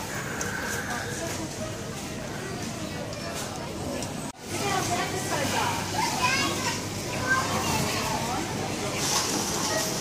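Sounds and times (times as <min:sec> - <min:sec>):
shoppers chattering: 0:00.0 - 0:10.0
children's voices: 0:04.6 - 0:10.0.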